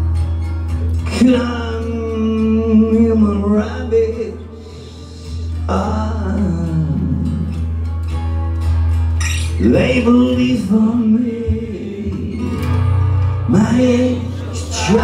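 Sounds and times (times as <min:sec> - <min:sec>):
acoustic guitar strumming: 0:00.0 - 0:15.0
man singing: 0:00.9 - 0:07.7, 0:09.5 - 0:15.0.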